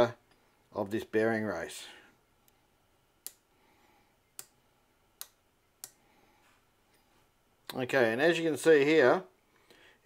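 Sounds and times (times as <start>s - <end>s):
micrometer clicks: 3.2s - 3.5s, 5.2s - 6.0s.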